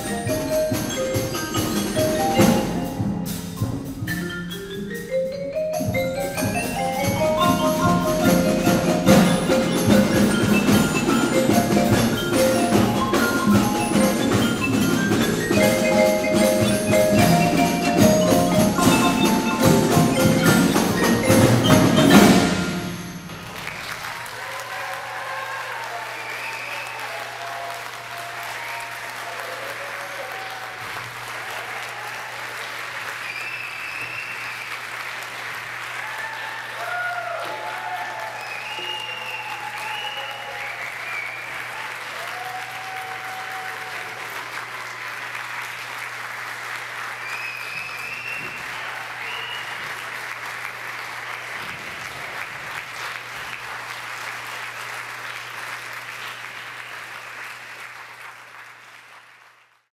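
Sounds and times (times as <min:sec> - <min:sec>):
audience applauding: 0:06.4 - 0:59.9
whoops and cheering: 0:24.0 - 0:32.4, 0:36.0 - 0:44.3, 0:47.2 - 0:49.9.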